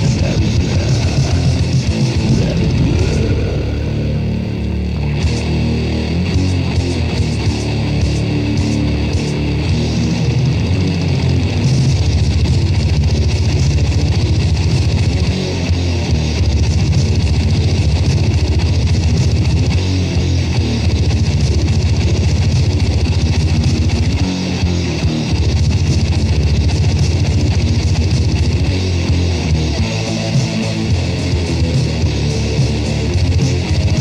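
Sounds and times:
fast pounding low end: 0:00.0 - 0:07.0
distorted electric guitars: 0:00.0 - 0:34.0.

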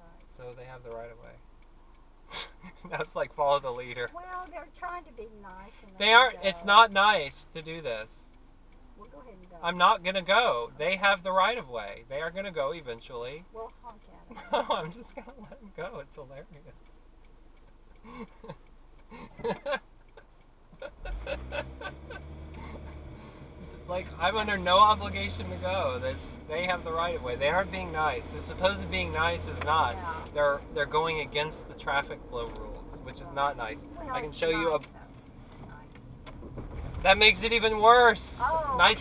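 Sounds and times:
turn signal ticking: 0:00.0 - 0:39.0
tyres on road: 0:00.0 - 0:39.0
car engine accelerating: 0:02.6 - 0:13.6, 0:14.3 - 0:39.0
faint clicks: 0:11.2 - 0:25.7, 0:26.4 - 0:38.2.

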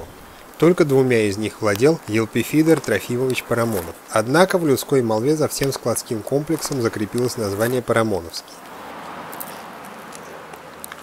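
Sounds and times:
distant road traffic hiss: 0:00.0 - 0:11.0.

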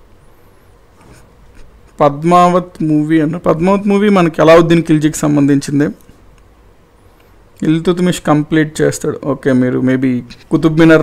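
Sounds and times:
soft scratching: 0:00.9 - 0:02.0.

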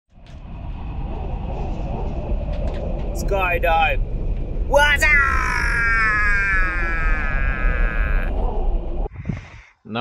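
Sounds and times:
deep rumbling noise: 0:00.1 - 0:09.6.

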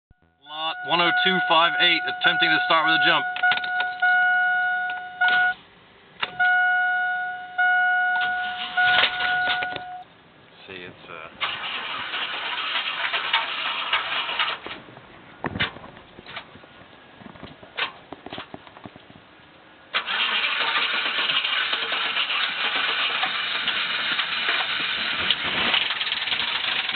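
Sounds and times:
engine running steadily: 0:00.2 - 0:26.9
engine starter cranking: 0:11.4 - 0:14.8, 0:19.9 - 0:26.9.

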